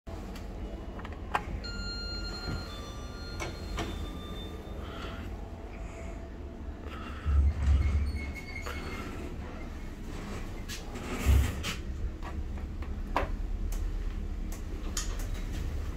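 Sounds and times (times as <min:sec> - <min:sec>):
elevator doors sliding: 0:00.2 - 0:05.6, 0:06.6 - 0:15.9
steady low rumble: 0:04.0 - 0:15.9.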